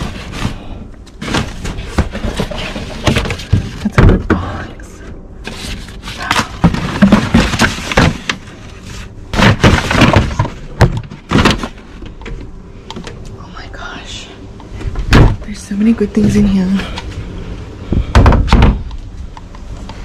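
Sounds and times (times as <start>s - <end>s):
knocks and thuds: 1.2s - 4.7s, 6.4s - 8.4s, 9.3s - 11.8s, 15.0s - 15.5s, 17.9s - 18.9s.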